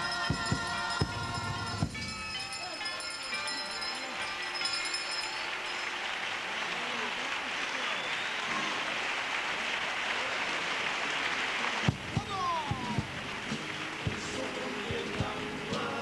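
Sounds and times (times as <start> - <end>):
group singing and playing: 0.0 - 2.2, 12.4 - 16.0
audience applause: 4.6 - 15.6.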